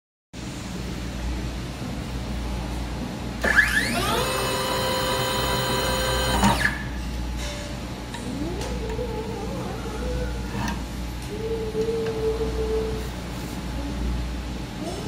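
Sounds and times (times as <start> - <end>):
taping machine head whining: 3.4 - 6.9.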